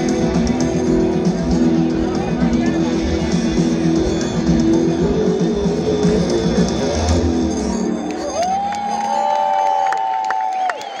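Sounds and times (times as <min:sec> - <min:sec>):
live rock band music: 0:00.0 - 0:07.8
crowd cheering: 0:03.0 - 0:11.0.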